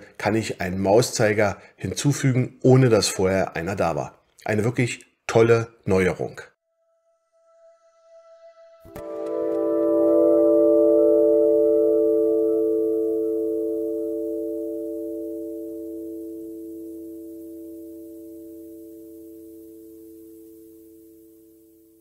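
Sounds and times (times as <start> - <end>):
chime-like logo chord: 7.4 - 19.0.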